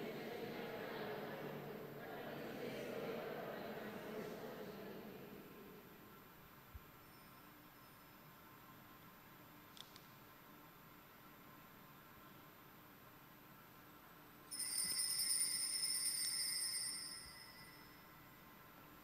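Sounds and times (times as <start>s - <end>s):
small altar bells ringing: 14.5s - 18.4s.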